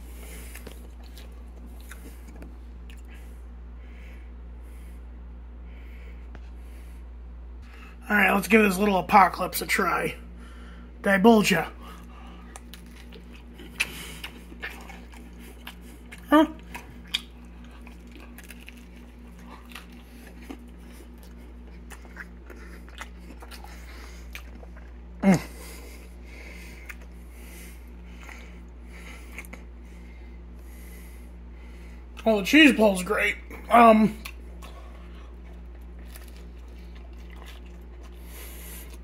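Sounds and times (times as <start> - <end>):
man chewing food: 0.0 - 8.0, 11.7 - 32.4, 33.4 - 39.0
steady low hum: 0.0 - 39.0.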